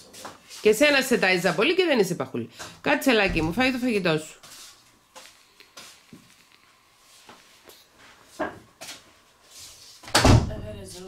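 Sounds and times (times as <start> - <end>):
loud thump: 3.2 - 3.8.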